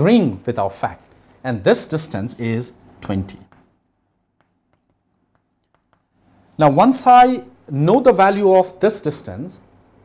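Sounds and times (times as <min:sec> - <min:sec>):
chalk writing on chalkboard: 0:01.8 - 0:06.2.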